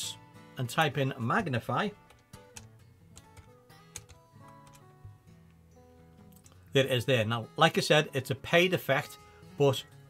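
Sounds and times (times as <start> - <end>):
quiet background music: 0.0 - 10.0
keyboard keys clicking: 2.1 - 4.9.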